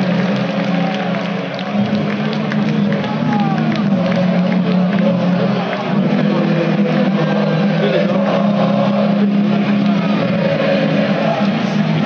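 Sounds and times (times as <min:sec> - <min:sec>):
crowd voices: 0:00.0 - 0:12.0
loud drone of low tones: 0:00.0 - 0:12.0.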